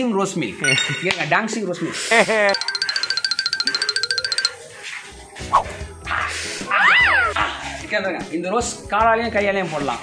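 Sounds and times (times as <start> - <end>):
high-pitched bell-like trill: 0.6 - 1.3, 2.5 - 4.6.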